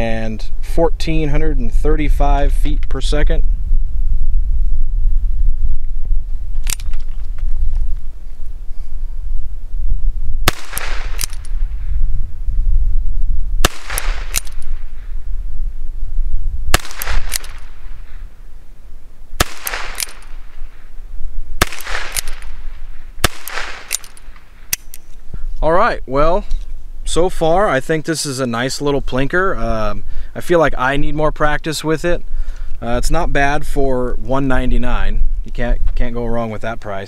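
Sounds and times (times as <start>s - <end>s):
revolver gunshots: 10.4s - 12.0s, 13.6s - 15.2s, 16.7s - 18.4s, 19.4s - 20.9s, 21.6s - 24.9s.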